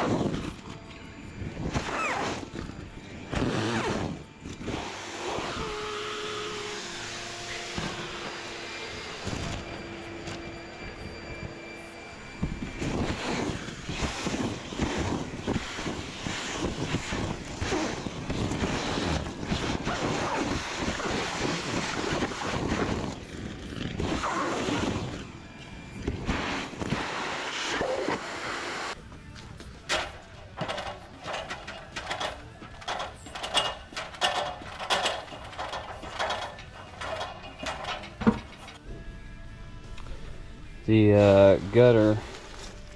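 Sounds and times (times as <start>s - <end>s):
vacuum motor running: 2.2s - 29.0s.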